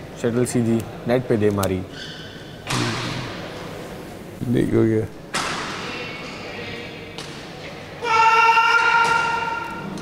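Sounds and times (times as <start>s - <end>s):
person shouting: 8.0s - 9.8s.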